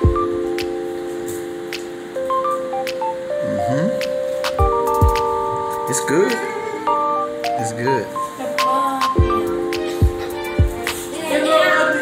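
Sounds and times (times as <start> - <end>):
sharp clicking percussion hits: 0.0 - 6.4, 8.6 - 11.1
held electronic notes: 0.0 - 12.0.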